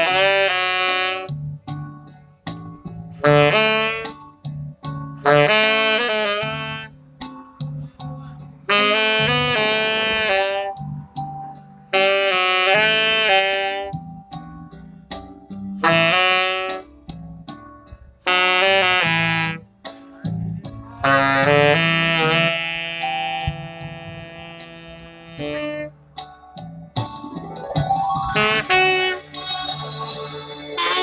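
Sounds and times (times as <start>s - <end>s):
saxophone slow melody: 0.0s - 1.9s, 2.9s - 17.3s, 18.2s - 26.4s, 27.6s - 31.0s
keyboard chords and bass notes: 0.0s - 31.0s.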